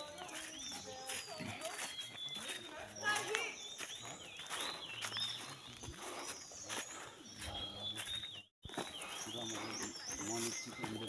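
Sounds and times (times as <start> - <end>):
birds whistling: 0.0 - 11.0
footsteps on leafy dirt trail: 0.0 - 11.0.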